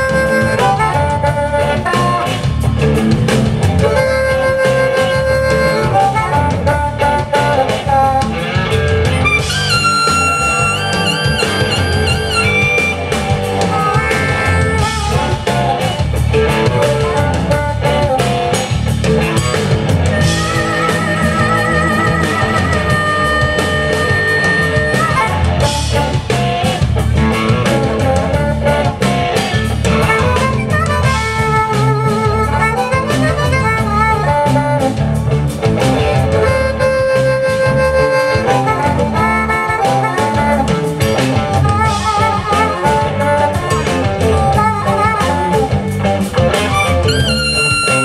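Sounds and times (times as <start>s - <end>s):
amplified blues harmonica: 0.0s - 48.0s
live blues band: 0.0s - 48.0s.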